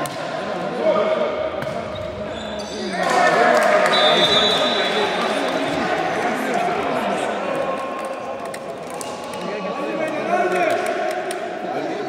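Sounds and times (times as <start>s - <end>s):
players shouting in echoing hall: 0.0s - 12.0s.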